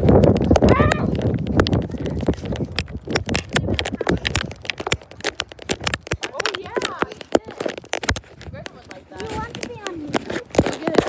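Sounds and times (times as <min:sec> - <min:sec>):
running footsteps: 0:00.0 - 0:11.0
handheld phone jostling: 0:01.2 - 0:11.0.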